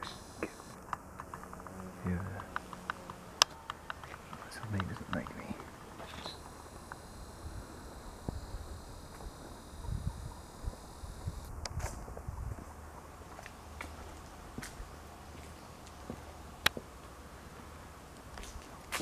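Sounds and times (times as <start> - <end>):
high-pitched whine: 0.0 - 1.0, 3.4 - 13.2
sharp clicks: 0.0 - 7.4
faint footsteps: 0.0 - 16.9, 17.6 - 19.0.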